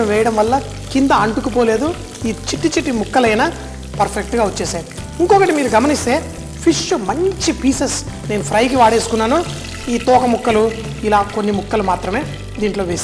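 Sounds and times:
fish sizzling in oil: 0.0s - 13.0s.

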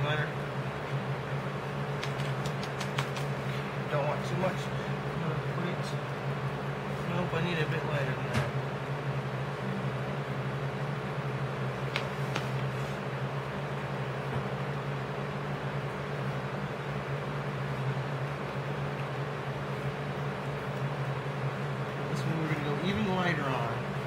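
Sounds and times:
low hum with hiss: 0.0s - 24.0s.

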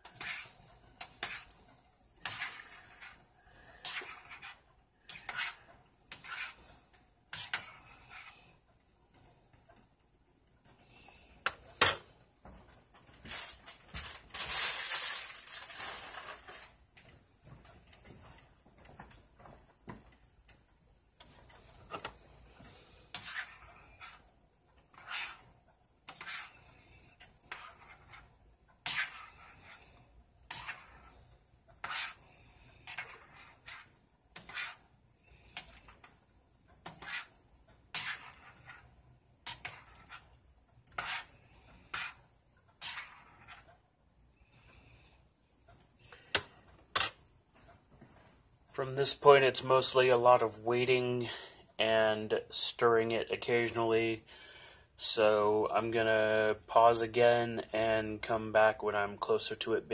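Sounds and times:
metal spoon scraping saucepan: 2.2s - 6.7s, 23.1s - 24.2s, 26.1s - 31.2s, 31.8s - 34.8s, 40.9s - 42.2s.

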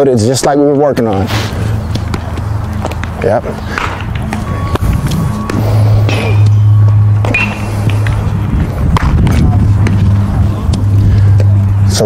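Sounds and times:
loud steady low hum: 0.8s - 12.0s.

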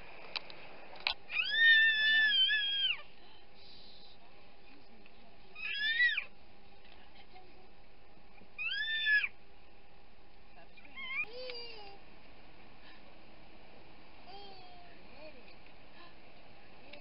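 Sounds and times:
cat meowing: 8.6s - 9.3s.

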